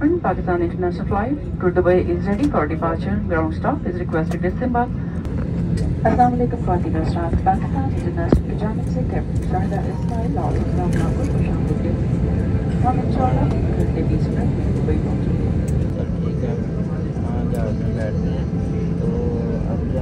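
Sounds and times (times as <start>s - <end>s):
airplane cabin hum: 0.0s - 20.0s
passenger chatter: 0.0s - 20.0s.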